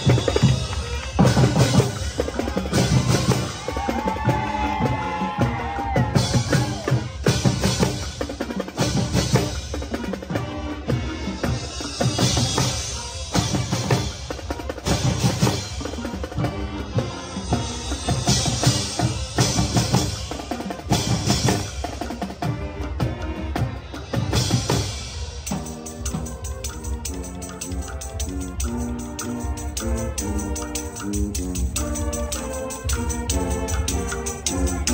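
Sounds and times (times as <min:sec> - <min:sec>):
snare and bass drums: 0:00.0 - 0:34.9
wind instruments holding chords: 0:00.0 - 0:34.9.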